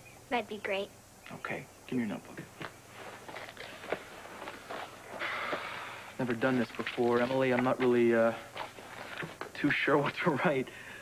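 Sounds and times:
paper rustling: 3.0s - 9.6s.

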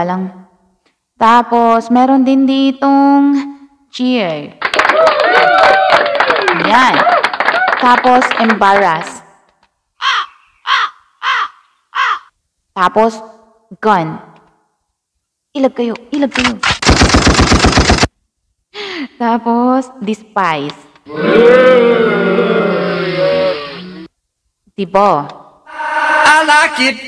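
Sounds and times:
crow cawing sound effect: 10.0s - 12.3s.

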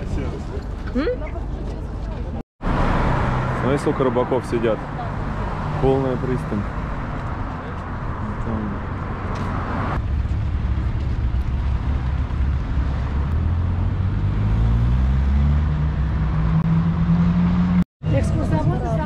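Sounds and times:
street traffic: 0.0s - 19.0s
vehicle engine accelerating: 2.6s - 19.0s.

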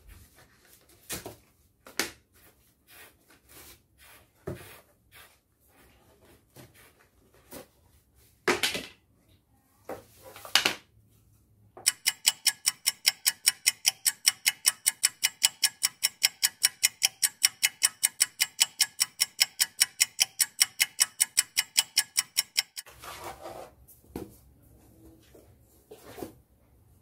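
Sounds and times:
fast clock ticking: 11.9s - 22.9s.

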